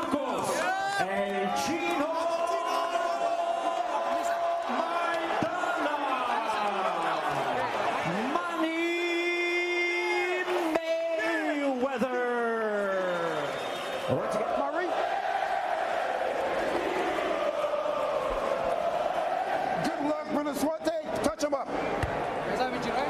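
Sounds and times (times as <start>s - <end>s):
crowd cheering: 0.0s - 23.0s.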